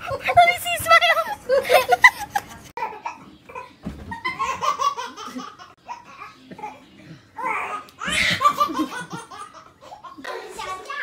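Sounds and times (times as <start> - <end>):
people laughing: 1.5 - 2.7.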